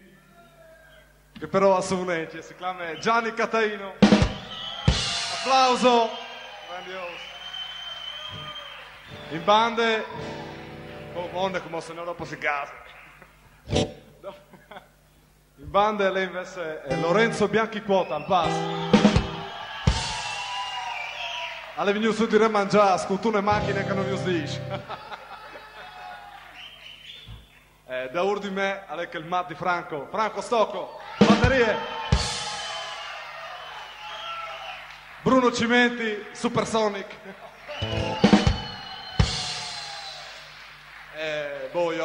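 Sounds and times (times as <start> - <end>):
drum hits: 4.0 - 5.5, 18.5 - 20.4, 31.2 - 32.7, 37.8 - 40.0.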